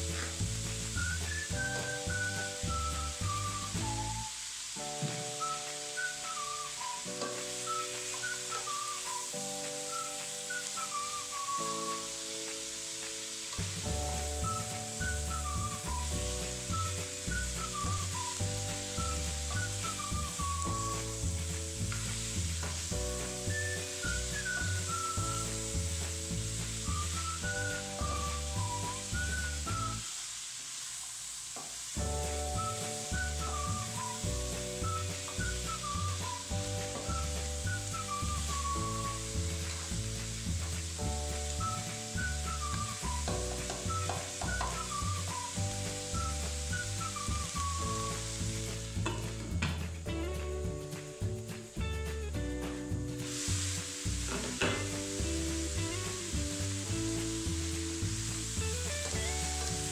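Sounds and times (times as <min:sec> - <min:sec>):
background music: 0:00.0 - 0:30.0, 0:32.0 - 0:59.9
vegetables sizzling in a pot: 0:00.0 - 0:59.9.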